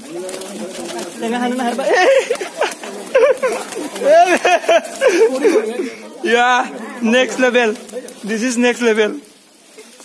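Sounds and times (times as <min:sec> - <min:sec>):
pigeon wings flapping: 0:00.0 - 0:10.0
man laughing exclamation: 0:01.9 - 0:06.0.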